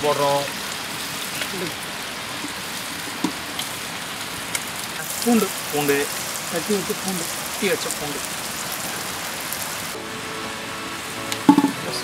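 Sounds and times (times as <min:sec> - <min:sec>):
rushing water hiss: 0:00.0 - 0:12.0.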